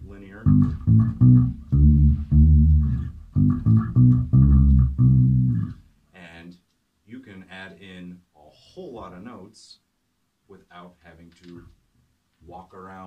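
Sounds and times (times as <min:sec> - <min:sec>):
electric bass notes: 0:00.0 - 0:05.9.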